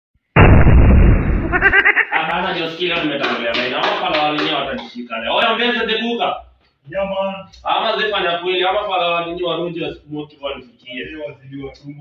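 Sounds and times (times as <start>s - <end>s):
loud rumbling boom: 0.4s - 1.9s
man's voice: 2.1s - 12.0s.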